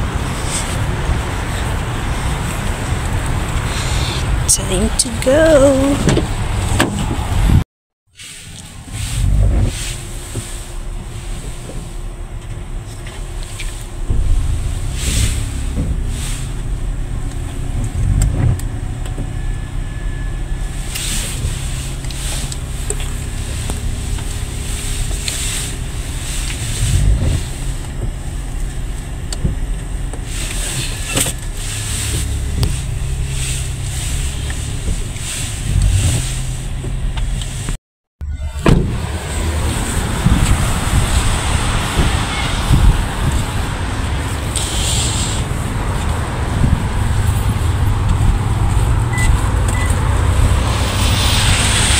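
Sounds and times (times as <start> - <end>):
engine and road rumble: 0.0 - 51.9.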